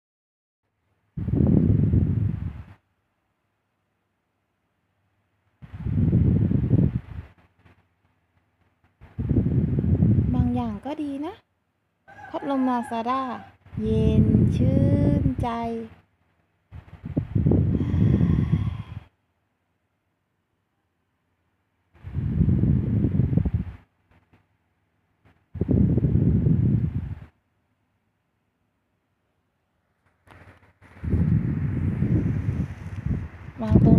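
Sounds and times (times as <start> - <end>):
fan wind rumble on microphone: 0.8 - 3.5, 5.2 - 11.4, 12.1 - 19.2, 21.9 - 24.5, 25.2 - 27.4, 29.9 - 33.9.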